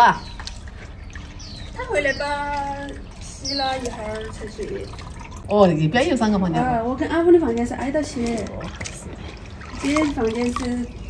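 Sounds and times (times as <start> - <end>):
water dripping: 0.0 - 11.0
water sloshing in a basin: 0.0 - 11.0.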